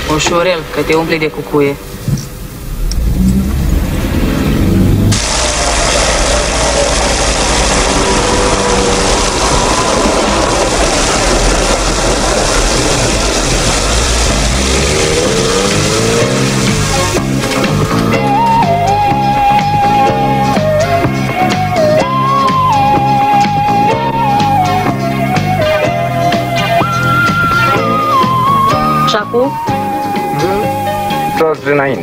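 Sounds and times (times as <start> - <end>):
steady rushing noise: 0.0 - 29.1
street traffic: 0.0 - 31.8
car engine: 1.8 - 29.7.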